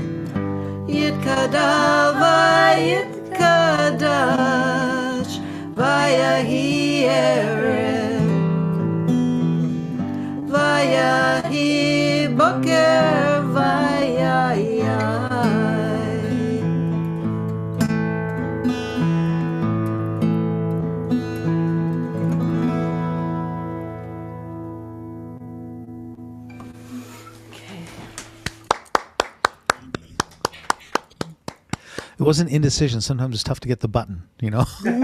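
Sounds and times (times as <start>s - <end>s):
acoustic guitar chord ringing: 0.0s - 27.4s
person singing: 0.7s - 8.5s, 10.3s - 16.8s.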